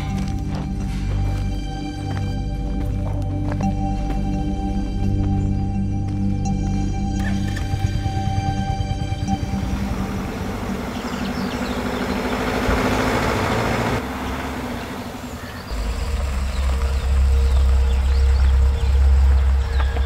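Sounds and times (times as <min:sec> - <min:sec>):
car engine rumbling: 0:00.0 - 0:20.0.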